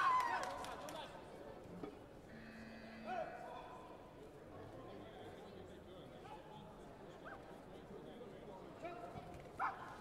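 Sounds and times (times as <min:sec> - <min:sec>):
murmur of voices: 0:00.0 - 0:10.0.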